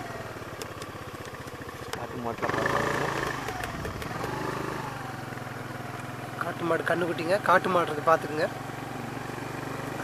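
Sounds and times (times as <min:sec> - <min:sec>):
vehicle engine running steadily: 0:00.0 - 0:10.0.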